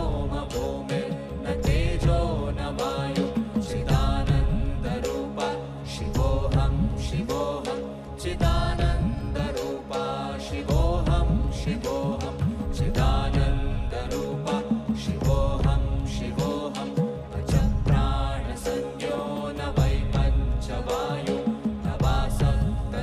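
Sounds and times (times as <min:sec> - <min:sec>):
women chanting: 0:00.0 - 0:23.0.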